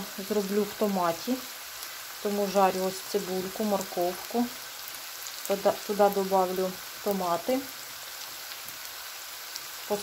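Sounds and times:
vegetables sizzling in oil: 0:00.0 - 0:10.0.

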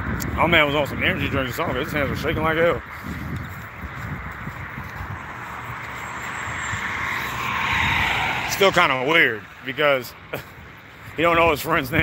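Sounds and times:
car tyre and road noise: 0:00.0 - 0:12.0.

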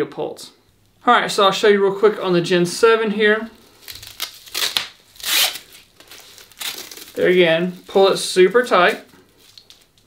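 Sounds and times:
nylon strap rustling and scraping: 0:03.4 - 0:10.0.

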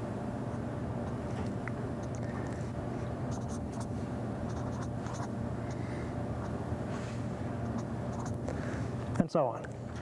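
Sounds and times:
steady low hum: 0:00.0 - 0:10.0
marker writing on paper: 0:03.3 - 0:03.9, 0:04.5 - 0:05.3, 0:07.7 - 0:08.4.

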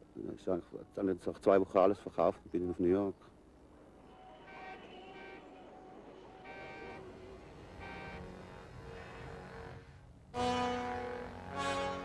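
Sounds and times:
faint city traffic rumble: 0:00.0 - 0:12.0
car horns: 0:04.0 - 0:12.0.

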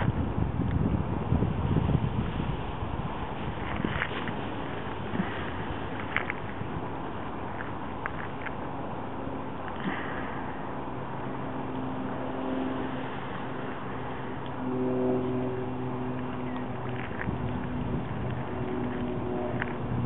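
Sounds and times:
distant engine droning: 0:00.0 - 0:20.0
wind noise: 0:00.0 - 0:20.0.

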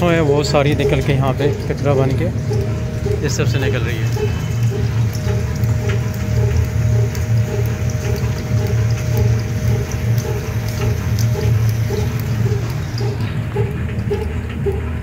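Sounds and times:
oil press machine humming: 0:00.0 - 0:15.0.

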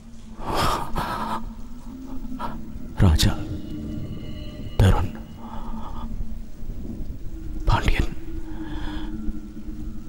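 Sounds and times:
rain: 0:00.0 - 0:10.0
low thunder rumble: 0:05.8 - 0:10.0.

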